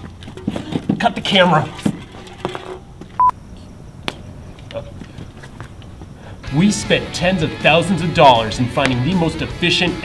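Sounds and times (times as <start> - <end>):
short electronic beep: 3.2 - 3.4.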